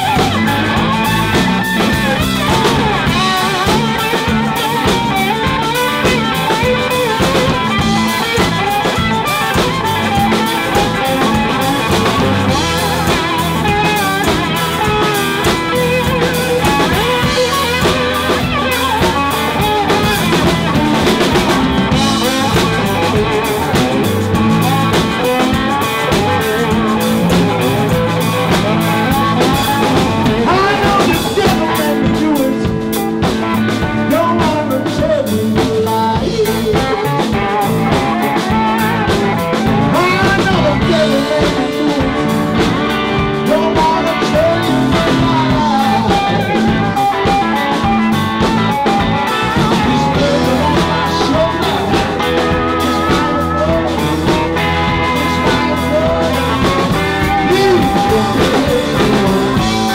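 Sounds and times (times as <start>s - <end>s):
blues-rock band playing: 0.0s - 59.9s
electric guitar bending notes: 0.0s - 59.9s.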